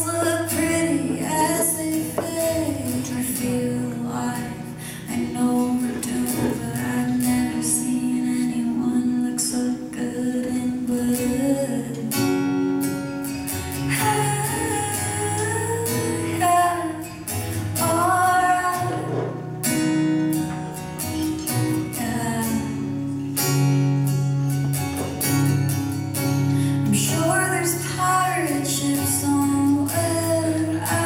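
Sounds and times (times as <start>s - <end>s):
woman singing into microphone: 0.0s - 12.8s, 13.7s - 19.9s, 21.8s - 23.2s, 26.6s - 31.0s
strummed acoustic guitar: 0.0s - 31.0s.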